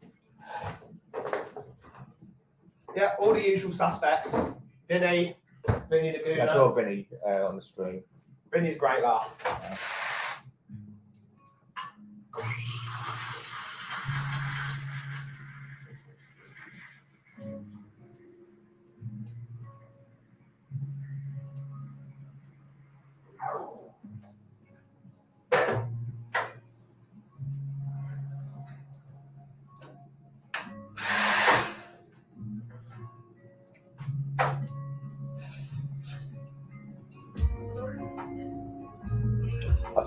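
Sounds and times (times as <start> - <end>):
background music: 0.0 - 40.0
espresso machine hissing: 9.6 - 10.4, 12.4 - 15.8, 31.0 - 31.8.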